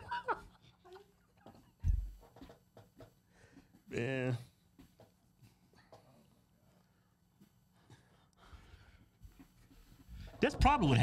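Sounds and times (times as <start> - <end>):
men stifling laughter: 0.0 - 1.2.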